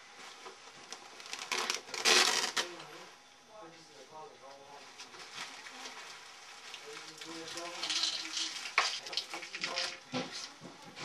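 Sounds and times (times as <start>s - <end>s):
plastic bag crinkling: 0.8s - 2.8s, 5.1s - 10.1s.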